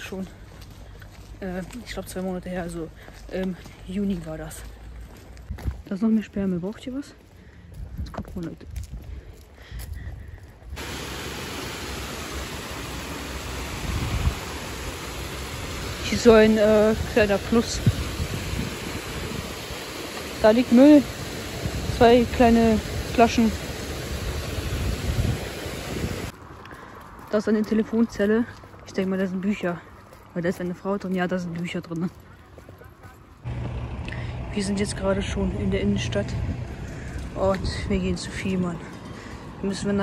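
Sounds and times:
wind noise on microphone: 5.4s - 5.9s, 7.6s - 11.3s, 13.4s - 26.3s, 35.6s - 38.8s
water rushing over weir: 10.8s - 26.3s.

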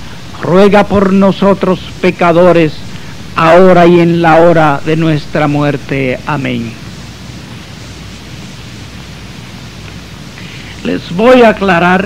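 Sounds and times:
steady hiss: 0.0s - 12.0s
man speaking: 0.3s - 6.8s, 10.8s - 12.0s.

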